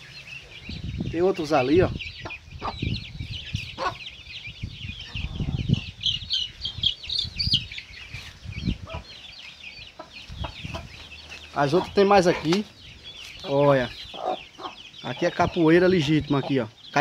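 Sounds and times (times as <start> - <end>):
chicks peeping: 0.0 - 17.0.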